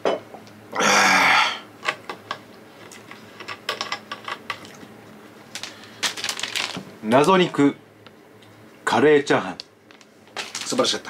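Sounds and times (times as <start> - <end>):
man burping: 0.7 - 1.7.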